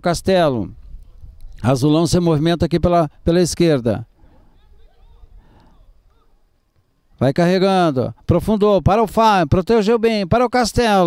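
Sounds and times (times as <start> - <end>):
distant players calling: 3.2 - 8.3.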